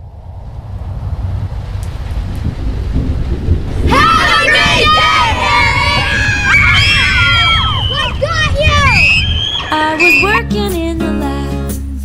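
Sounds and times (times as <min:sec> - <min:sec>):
low rumble: 0:00.0 - 0:10.0
girls screaming and squealing: 0:03.9 - 0:10.4.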